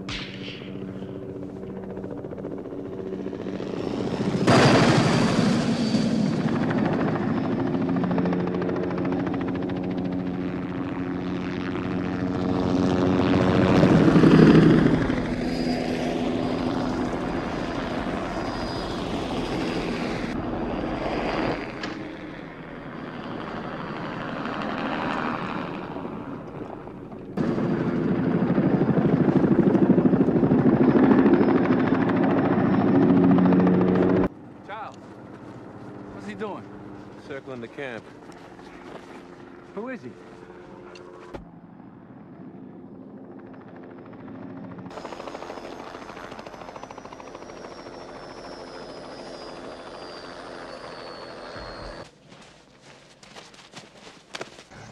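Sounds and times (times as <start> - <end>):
helicopter engine and rotor: 0.0 - 52.2.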